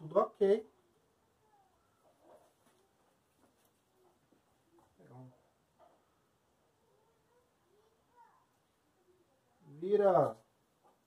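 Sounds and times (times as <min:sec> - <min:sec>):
faint soft rustles: 0:01.4 - 0:09.3.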